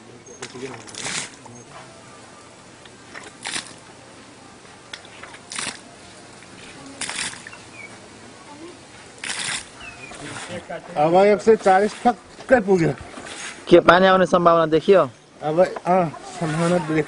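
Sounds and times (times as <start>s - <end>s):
water gushing in bursts: 0.4s - 1.5s, 2.6s - 14.4s, 16.0s - 17.0s.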